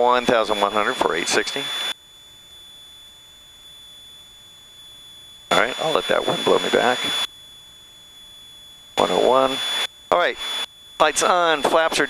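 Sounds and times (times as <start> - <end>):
intercom line hiss: 0.0 - 2.0, 5.5 - 7.3, 9.0 - 12.0
high electronic tone: 0.0 - 12.0.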